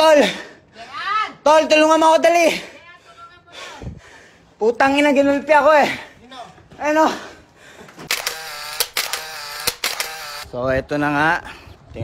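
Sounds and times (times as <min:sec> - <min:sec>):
camera shutter clicks: 0:08.1 - 0:10.5.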